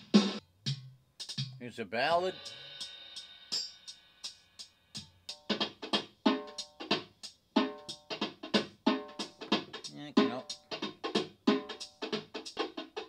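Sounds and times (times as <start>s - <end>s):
hand percussion beat: 7.6s - 13.0s.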